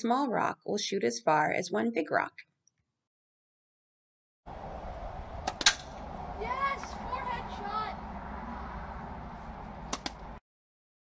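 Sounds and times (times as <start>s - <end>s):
child calling out: 6.4s - 8.1s.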